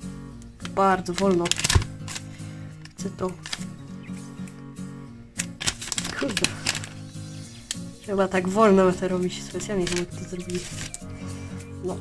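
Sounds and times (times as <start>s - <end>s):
background music with low chords: 0.0s - 12.0s
plastic film crackling as peeled: 0.5s - 4.5s, 5.4s - 8.1s, 8.9s - 11.5s.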